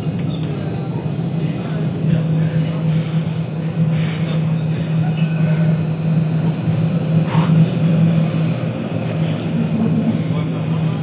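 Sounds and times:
low hum of moving tram: 0:00.0 - 0:11.0.

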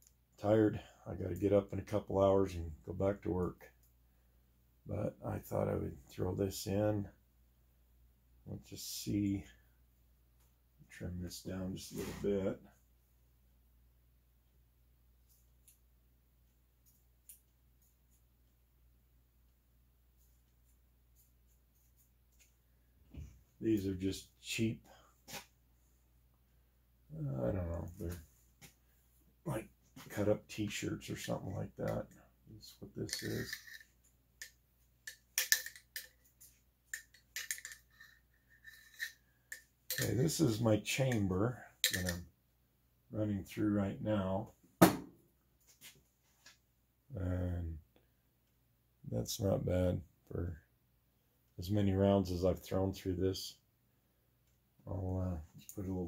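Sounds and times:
cleaning rod scraping in rifle barrel: 0:33.1 - 0:34.0, 0:37.0 - 0:39.2.

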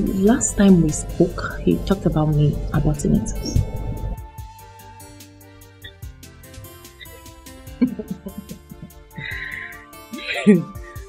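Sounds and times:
soft background music: 0:00.0 - 0:11.0
woman laughing: 0:07.0 - 0:11.0.

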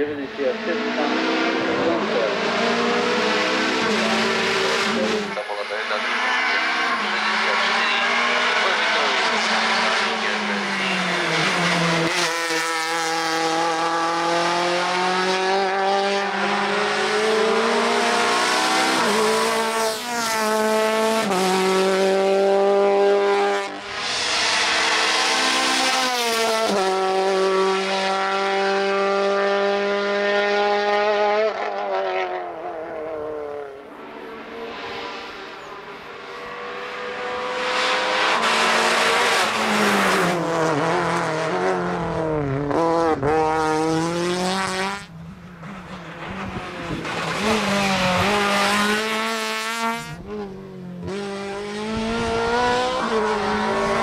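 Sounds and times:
racing car engine accelerating: 0:00.0 - 0:54.0.

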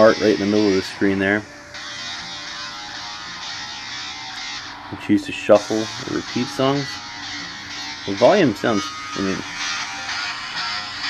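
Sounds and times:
electro dance music on phone speaker: 0:00.0 - 0:11.0.

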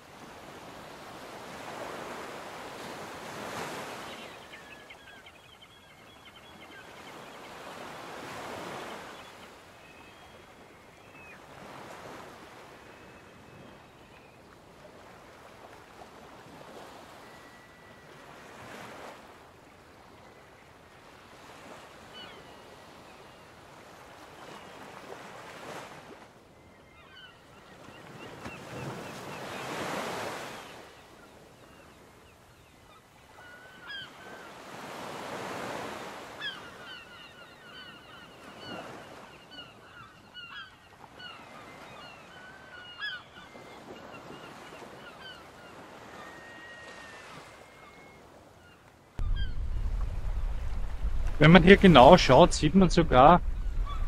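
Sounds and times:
birds calling: 0:03.5 - 0:11.8, 0:26.9 - 0:54.0
sea waves washing onto shore: 0:49.2 - 0:54.0
wind rushing on microphone: 0:49.2 - 0:54.0.

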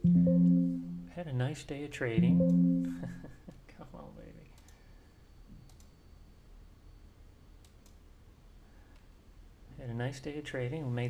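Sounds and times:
quiet room hum: 0:00.0 - 0:11.0
computer mouse clicking: 0:05.6 - 0:06.0, 0:07.6 - 0:08.0.

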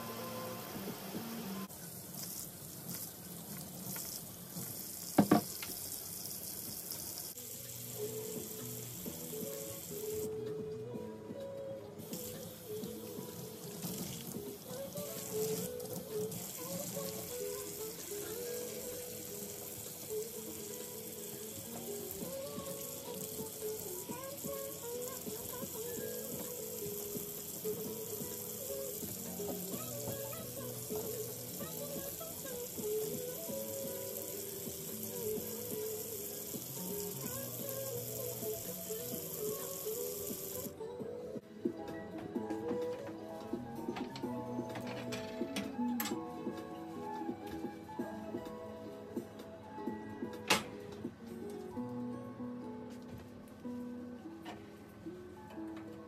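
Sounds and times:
background music: 0:00.0 - 0:02.0, 0:03.1 - 0:56.0
kitchen faucet running: 0:00.8 - 0:10.3, 0:12.1 - 0:40.7.

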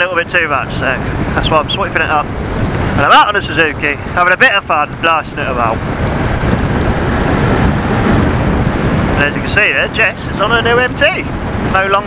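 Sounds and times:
road noise: 0:00.0 - 0:12.0
wind rushing on helmet microphone: 0:00.0 - 0:12.0.

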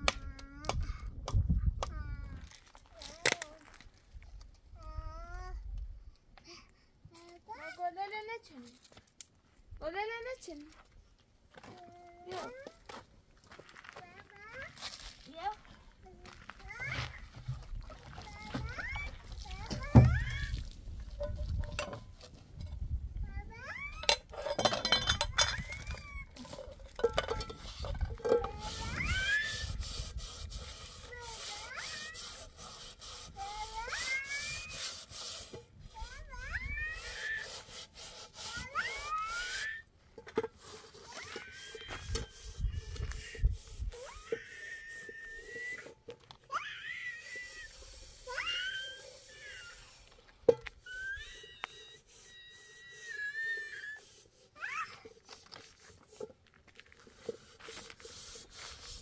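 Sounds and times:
metal pots scraping and clanking: 0:16.9 - 0:23.0, 0:23.9 - 0:33.3, 0:34.0 - 0:36.4, 0:37.1 - 0:46.5, 0:47.3 - 0:59.0.

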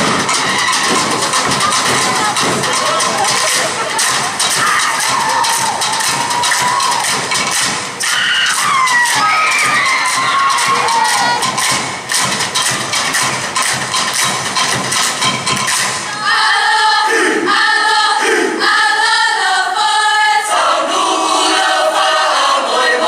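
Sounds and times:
group singing together: 0:00.0 - 0:12.7, 0:15.8 - 0:23.0
group clapping and slapping: 0:00.0 - 0:16.1
audience cheering: 0:00.6 - 0:11.8.

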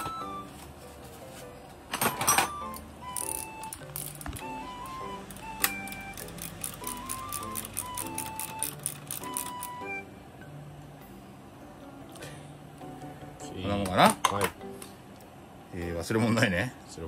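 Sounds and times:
simple melody with bass line: 0:02.6 - 0:13.8.

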